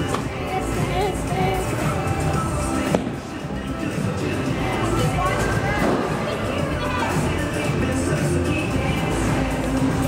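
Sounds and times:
background music: 0.0s - 10.0s
person talking: 0.4s - 2.0s.

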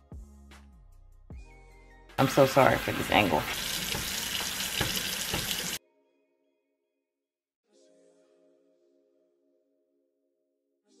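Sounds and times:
tap water splashing into sink: 2.7s - 5.8s.

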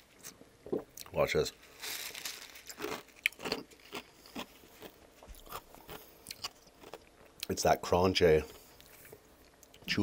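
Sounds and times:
ice crunched between teeth: 1.9s - 7.0s.

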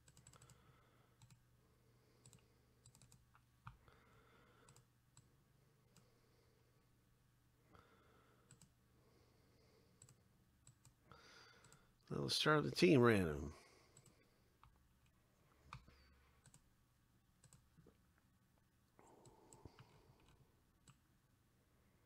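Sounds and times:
computer mouse clicks: 0.0s - 0.6s, 1.2s - 1.4s, 2.2s - 3.8s, 4.6s - 5.3s, 8.4s - 8.8s, 10.0s - 11.0s, 13.9s - 16.7s, 17.4s - 17.9s, 19.2s - 21.0s.

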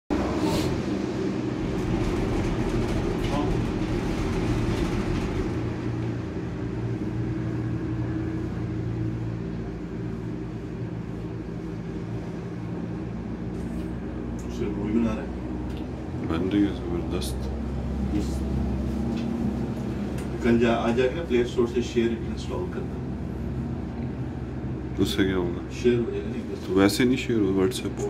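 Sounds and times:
cable car gondola hum: 0.1s - 28.0s
low machinery tones: 0.1s - 28.0s.

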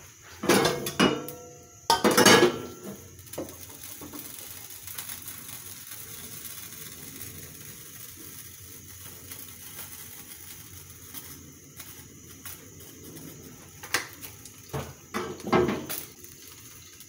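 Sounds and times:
gas stove burner hissing: 0.0s - 17.0s.

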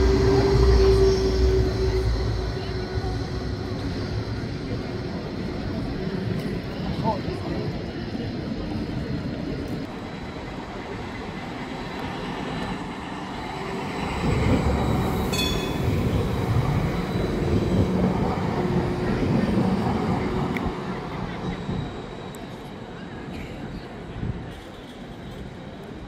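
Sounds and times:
tram rolling rumble: 0.0s - 26.0s.

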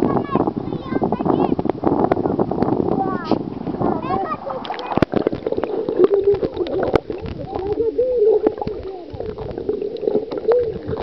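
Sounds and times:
underwater gurgling and clicks: 0.0s - 11.0s.

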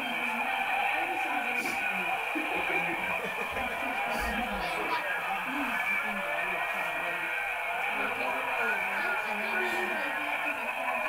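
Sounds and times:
muffled voices from tv speaker: 0.0s - 11.0s.

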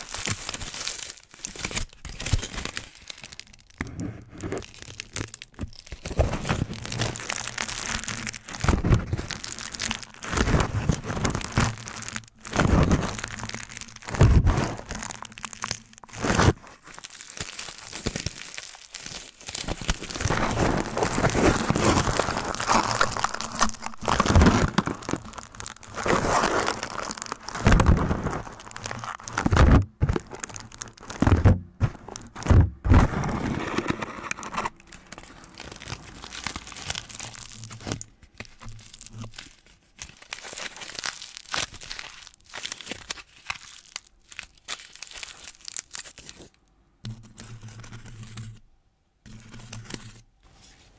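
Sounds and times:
foil crinkling on microphone: 0.0s - 48.4s.

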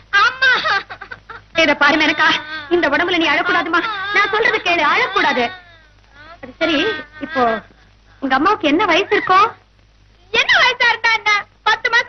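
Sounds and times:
woman sobbing wails: 0.2s - 8.3s.

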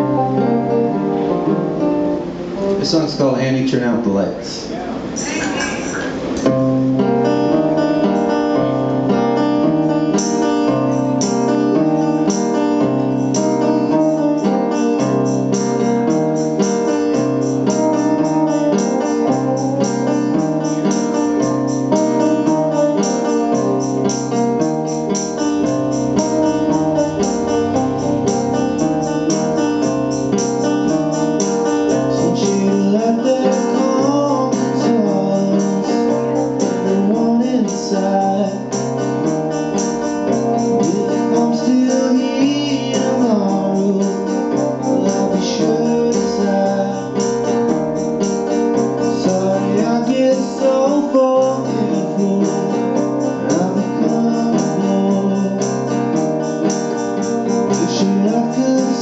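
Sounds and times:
guitars strummed: 0.0s - 59.0s
repeating bass line: 24.7s - 31.2s
person singing: 25.6s - 39.0s, 40.6s - 47.6s, 49.1s - 56.9s, 57.6s - 59.0s.

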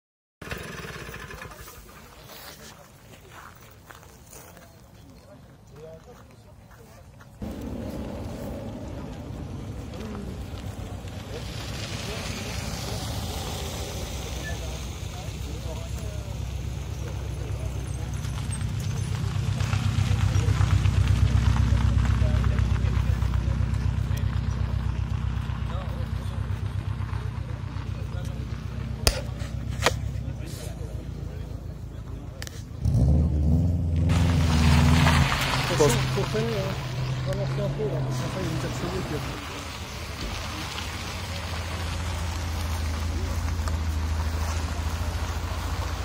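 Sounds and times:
people talking: 1.1s - 32.9s, 35.1s - 46.0s
car engine rumbling: 7.3s - 46.0s.

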